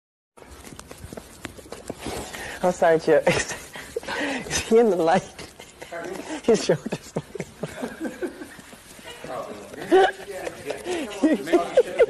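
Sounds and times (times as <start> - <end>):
room noise hiss: 0.4 - 12.0.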